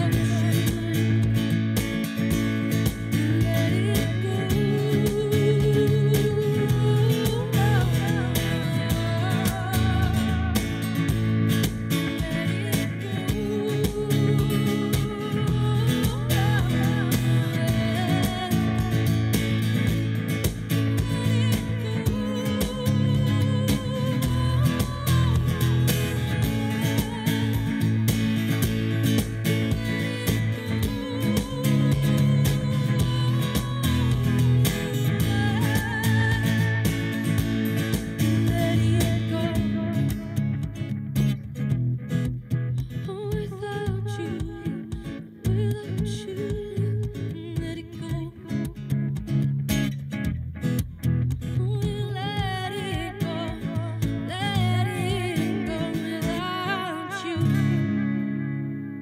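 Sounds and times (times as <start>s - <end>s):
woman singing: 0.0s - 41.0s, 42.8s - 49.2s, 51.4s - 58.3s
acoustic guitar strummed and picked: 0.0s - 59.0s.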